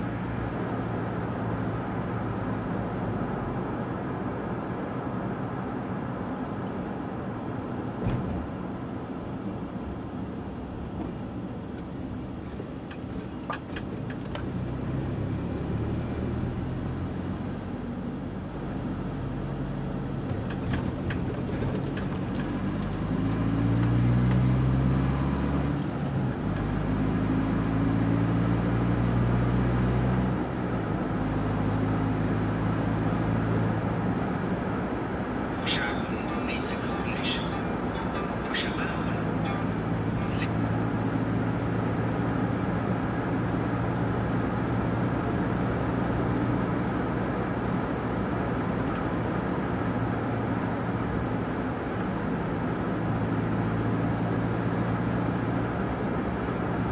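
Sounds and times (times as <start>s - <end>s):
car engine and tyre rumble: 0.0s - 56.9s.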